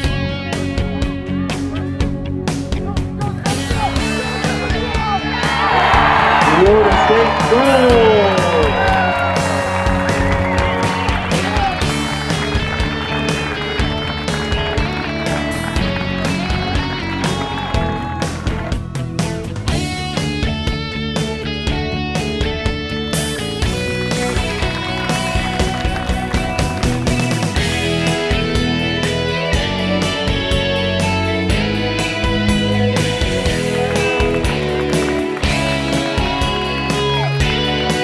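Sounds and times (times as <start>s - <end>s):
music with guitar and beat: 0.0s - 38.0s.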